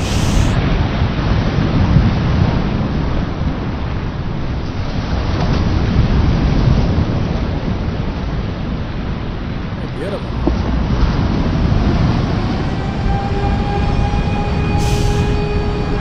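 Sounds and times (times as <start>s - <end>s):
hiss: 0.0s - 0.6s, 14.8s - 15.5s
low rumbling noise: 0.0s - 16.0s.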